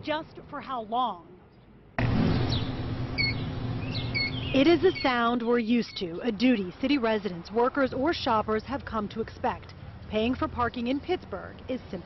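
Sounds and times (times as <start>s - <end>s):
low traffic hum: 0.0s - 12.0s.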